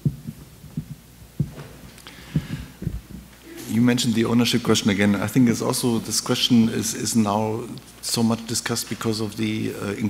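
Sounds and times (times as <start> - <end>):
thumps of microphone handling: 0.0 - 3.3
faint steady hum: 0.0 - 10.0.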